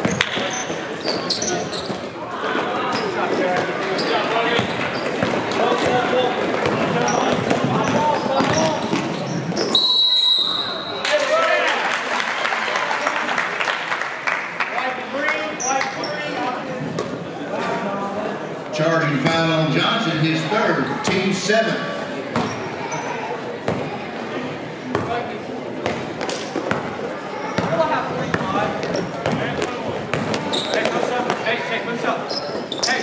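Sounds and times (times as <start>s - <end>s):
sneakers squeaking: 0.0s - 11.0s, 22.3s - 24.0s, 25.8s - 33.0s
referee's whistle blast: 9.7s - 11.0s.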